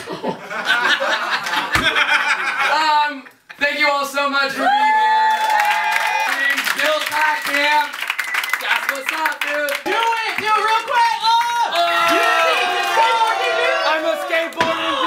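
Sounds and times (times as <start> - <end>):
clapping: 5.2 - 13.6.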